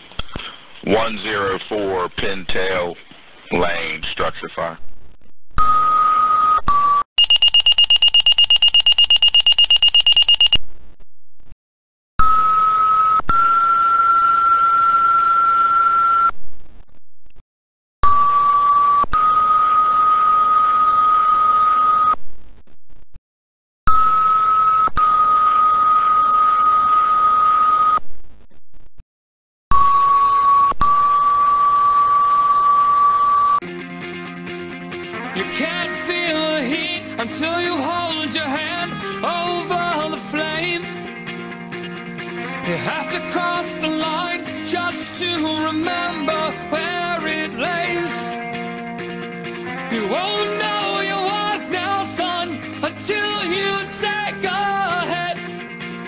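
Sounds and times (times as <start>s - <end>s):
rapidly pulsing alert beep: 7.2s - 10.6s
two-tone radio paging tones: 7.2s - 10.6s.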